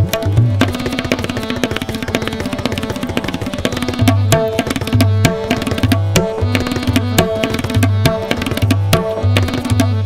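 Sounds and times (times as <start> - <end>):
tabla playing fast strokes: 0.0 - 10.0.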